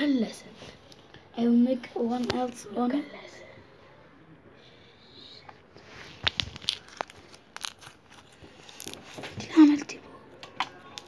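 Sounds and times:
slime pops and crackles: 0:06.2 - 0:09.2.

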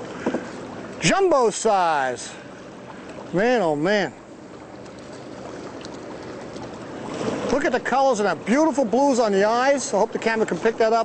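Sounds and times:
water washing around boat: 0:00.0 - 0:11.0
wind: 0:00.0 - 0:11.0.

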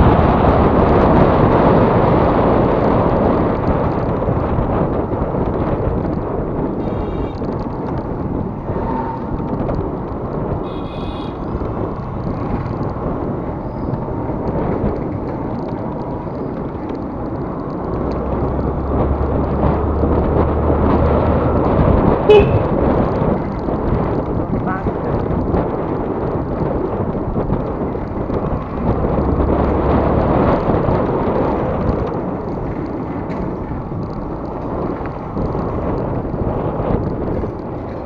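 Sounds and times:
wind rushing over microphone: 0:00.0 - 0:38.0
vehicle horn toots: 0:06.8 - 0:07.5, 0:10.6 - 0:11.5, 0:22.3 - 0:22.8.

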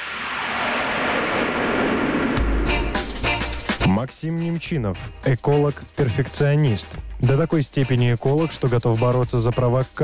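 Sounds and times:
rushing whoosh: 0:00.0 - 0:03.8.

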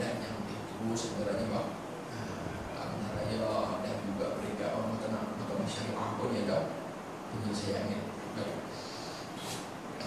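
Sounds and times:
man speaking into a microphone: 0:00.0 - 0:08.8.

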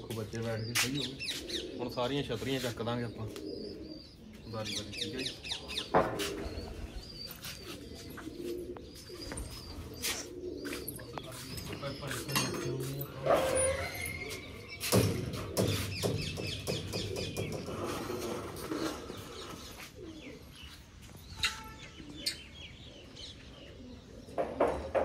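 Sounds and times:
birds chirping and calling: 0:00.0 - 0:25.0.

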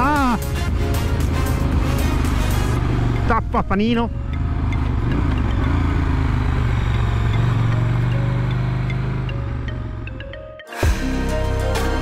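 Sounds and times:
background music: 0:00.0 - 0:12.0
motorcycle engine at low revs: 0:00.4 - 0:10.4.

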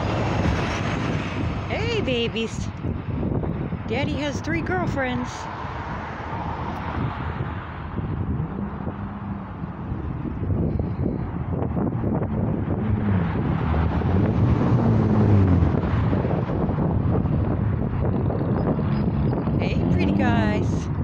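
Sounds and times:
passing engine rumble: 0:00.0 - 0:21.0
wind on microphone: 0:00.0 - 0:21.0.

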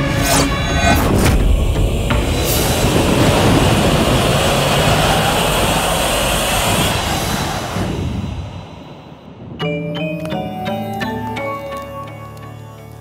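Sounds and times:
loud steady rushing noise: 0:00.0 - 0:09.6.

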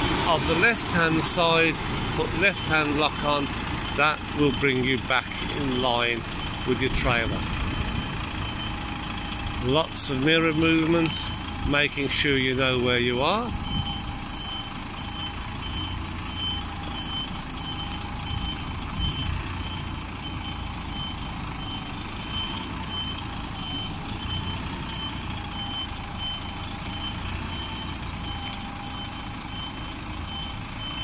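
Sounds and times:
high-pitched reversing alarm beeps: 0:00.0 - 0:31.0
truck diesel engine running: 0:00.0 - 0:31.0.

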